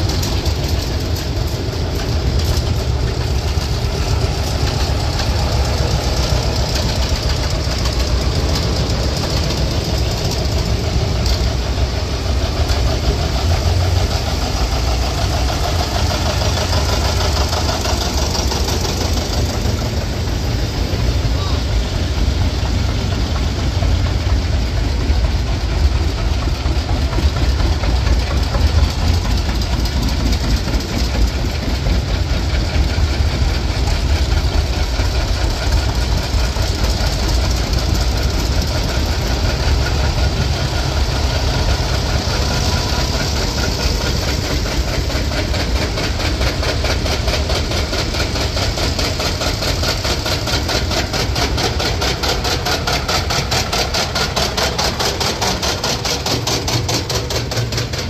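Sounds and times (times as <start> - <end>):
tractor engines rumbling: 0.0 - 58.0.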